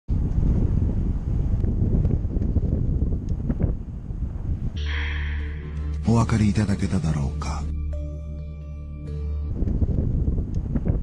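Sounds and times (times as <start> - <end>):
wind buffeting microphone: 0.1 - 5.6, 9.4 - 11.0.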